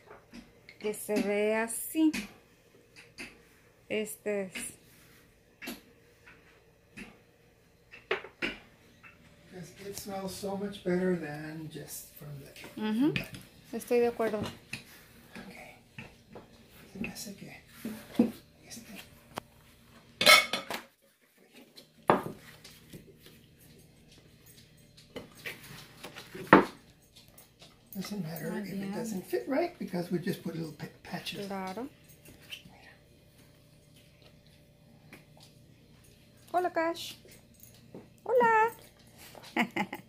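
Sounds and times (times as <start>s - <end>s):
kitchenware clattering on a counter: 20.2s - 20.9s, 26.2s - 26.8s.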